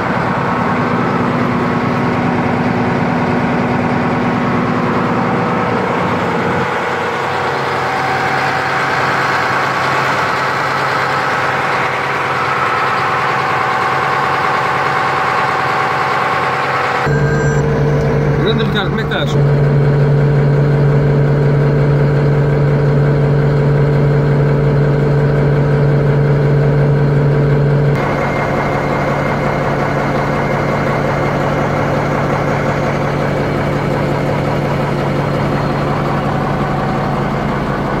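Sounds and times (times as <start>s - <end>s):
bulldozer diesel engine idling: 0.0s - 38.0s.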